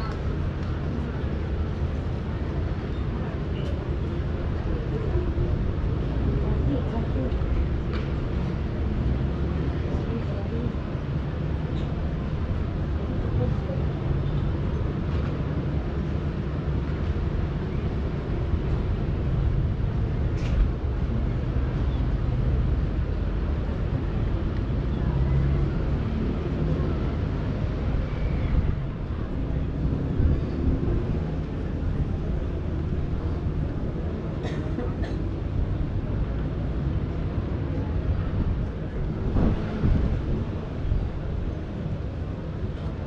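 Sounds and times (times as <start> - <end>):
distant boat and city noise: 0.0 - 43.0
wind on microphone: 36.9 - 43.0.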